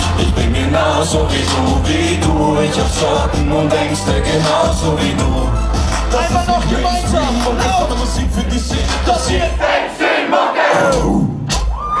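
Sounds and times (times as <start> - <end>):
hip-hop backing track: 0.0 - 10.0
crowd shouting and cheering: 0.0 - 12.0.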